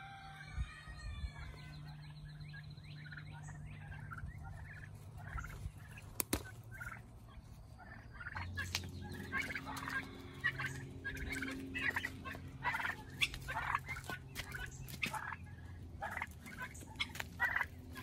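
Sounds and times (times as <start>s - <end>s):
turkeys calling: 0.0s - 18.0s.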